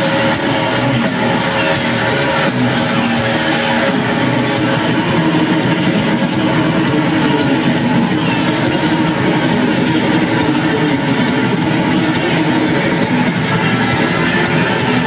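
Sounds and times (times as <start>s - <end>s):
distorted guitar and bass: 0.0s - 15.0s
drums: 0.0s - 15.0s.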